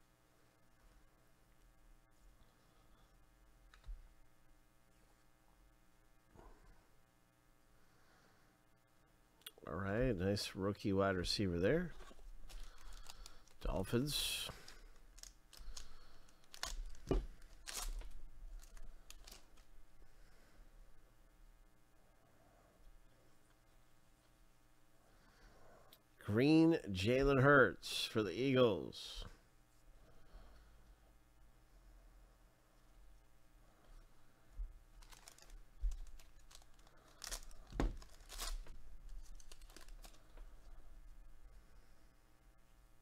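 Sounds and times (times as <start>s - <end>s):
wrapper tearing and crinkling: 12.4s - 13.8s, 14.6s - 19.7s, 35.0s - 40.3s.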